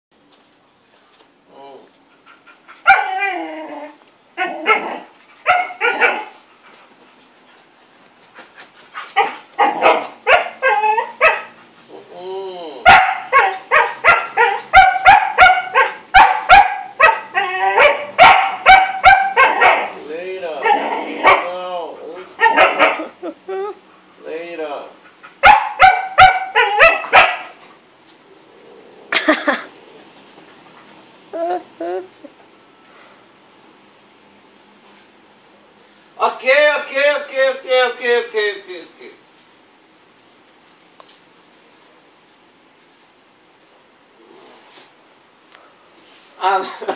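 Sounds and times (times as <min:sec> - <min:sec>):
dog whining: 0:02.7 - 0:06.4, 0:08.9 - 0:12.1, 0:13.1 - 0:20.0, 0:20.6 - 0:23.8, 0:25.5 - 0:27.5
dog barking: 0:04.4 - 0:06.4, 0:09.2 - 0:11.6, 0:12.8 - 0:20.0, 0:20.6 - 0:21.5, 0:22.4 - 0:23.2, 0:25.4 - 0:27.6.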